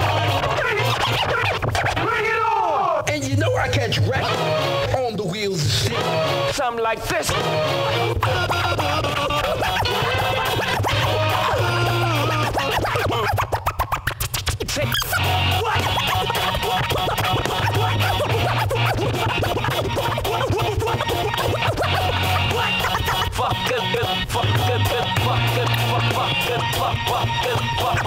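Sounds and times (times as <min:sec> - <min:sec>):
beat with steady bass line: 0:00.0 - 0:01.7, 0:07.3 - 0:13.5, 0:14.7 - 0:28.0
turntable scratching: 0:00.0 - 0:28.0.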